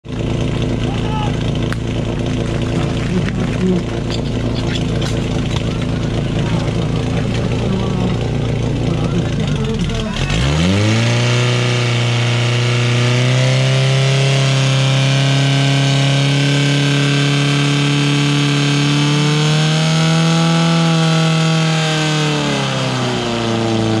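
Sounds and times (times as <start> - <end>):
pump engine revving: 0.0 - 24.0.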